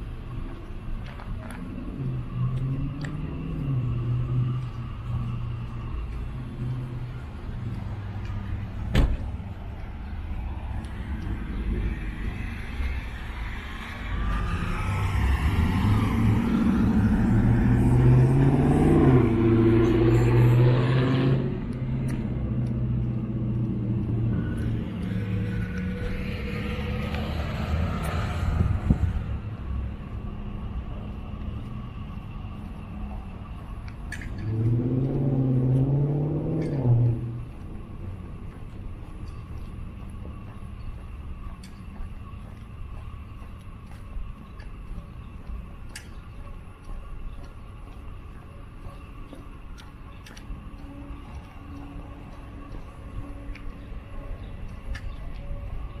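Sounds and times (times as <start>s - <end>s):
vehicle driving past: 1.5s - 33.7s, 34.3s - 38.7s.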